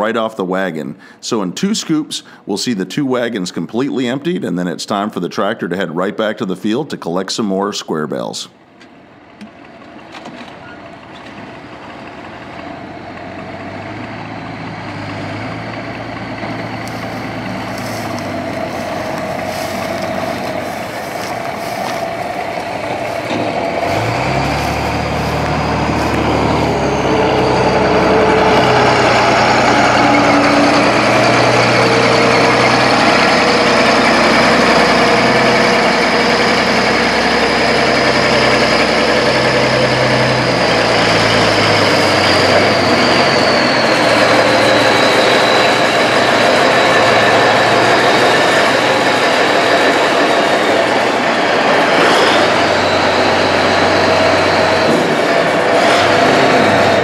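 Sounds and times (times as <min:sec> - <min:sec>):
diesel engine running under load: 0:01.0 - 0:01.3, 0:02.2 - 0:02.5, 0:08.6 - 0:57.0
high whine: 0:14.1 - 0:57.0.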